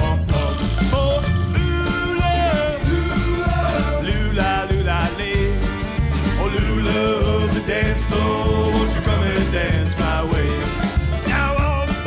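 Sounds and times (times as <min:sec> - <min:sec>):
upbeat song with bass beat: 0:00.0 - 0:12.0.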